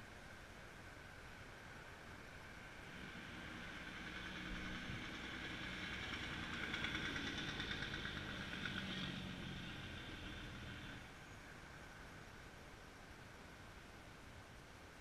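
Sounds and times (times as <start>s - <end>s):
motor vehicle passing: 2.6s - 11.2s.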